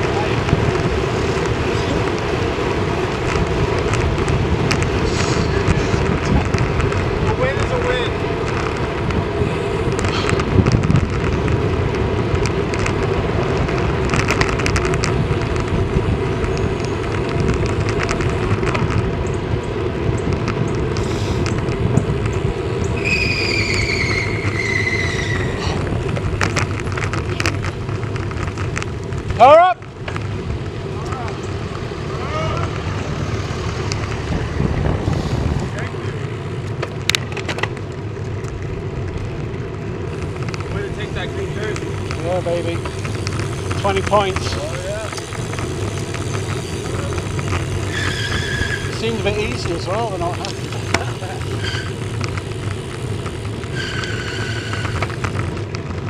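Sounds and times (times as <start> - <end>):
tyres humming on tarmac: 0.0 - 56.0
wind noise: 0.0 - 56.0
high squeal: 23.0 - 25.8, 47.8 - 49.0, 51.5 - 52.1, 53.7 - 55.0.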